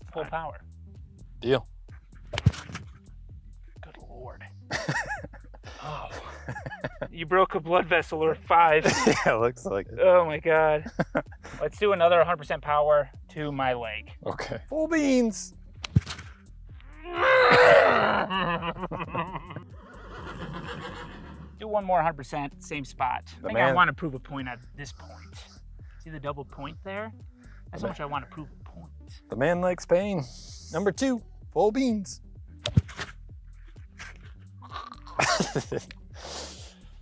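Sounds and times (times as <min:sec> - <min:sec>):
sharp slap on bare chest: 0:02.2 - 0:03.0, 0:15.8 - 0:16.4, 0:32.6 - 0:33.2
man laughing: 0:04.7 - 0:07.2, 0:08.8 - 0:09.5, 0:10.7 - 0:11.7, 0:17.2 - 0:21.5, 0:35.0 - 0:36.0
man yelling in pain: 0:17.0 - 0:18.4.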